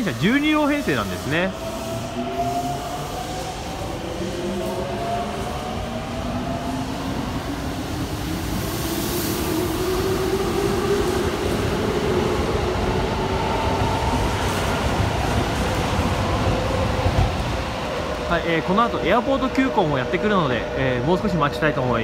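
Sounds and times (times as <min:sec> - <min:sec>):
rumble of train wheels: 0:00.0 - 0:22.0.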